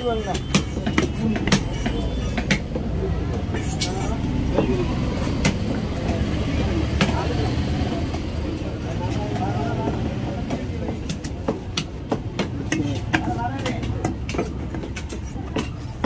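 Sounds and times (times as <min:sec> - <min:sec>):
knife knocking on wood: 0:00.3 - 0:02.9.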